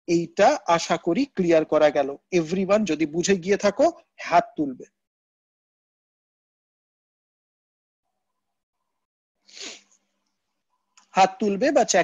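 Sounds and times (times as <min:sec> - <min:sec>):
man breathing sharply through nose: 0:09.5 - 0:09.9.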